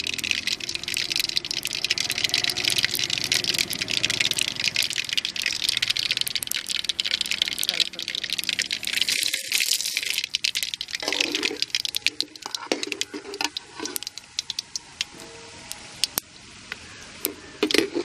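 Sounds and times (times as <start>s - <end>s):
lentils sizzling and popping in oil: 0.0s - 18.0s.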